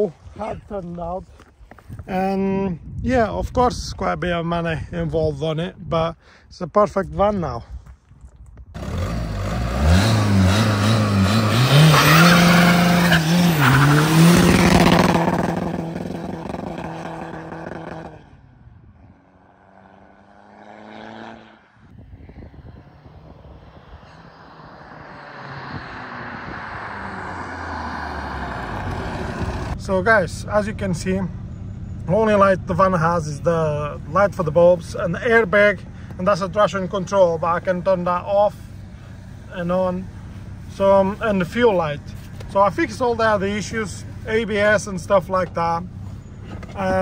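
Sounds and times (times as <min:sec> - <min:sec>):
diesel car accelerating hard: 0:08.8 - 0:18.5, 0:19.2 - 0:47.0.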